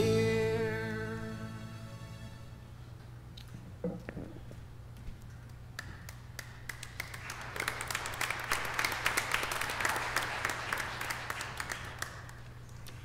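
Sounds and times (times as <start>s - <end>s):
congregation applauding: 6.1s - 12.6s.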